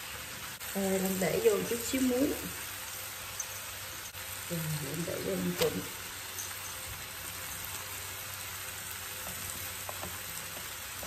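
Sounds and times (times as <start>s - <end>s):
water heating in pot hissing: 0.0s - 11.0s.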